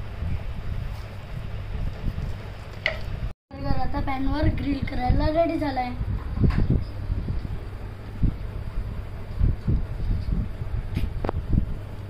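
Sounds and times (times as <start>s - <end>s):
low rumble on microphone: 3.2s - 12.0s.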